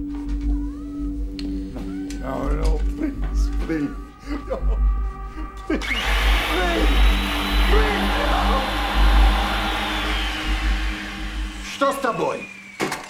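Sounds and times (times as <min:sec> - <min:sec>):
power tool motor whining: 0:05.8 - 0:13.0.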